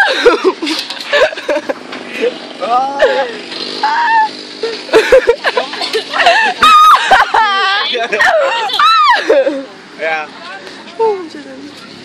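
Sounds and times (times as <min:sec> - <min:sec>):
people shouting: 0:02.6 - 0:04.4, 0:06.2 - 0:09.4
young people chattering excitedly: 0:05.3 - 0:12.0.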